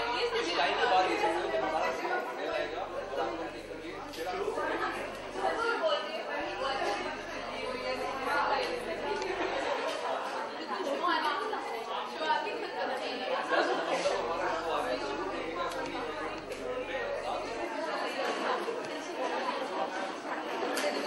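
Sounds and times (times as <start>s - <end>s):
man talking: 0.0s - 5.6s
chatter of people: 0.0s - 21.0s.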